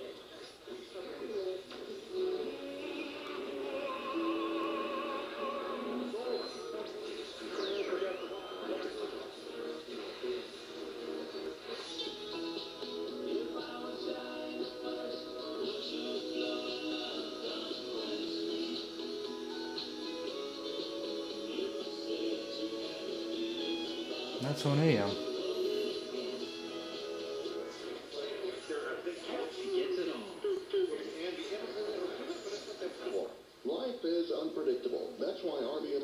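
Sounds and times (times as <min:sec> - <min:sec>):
music from small speaker: 0:00.0 - 0:33.2.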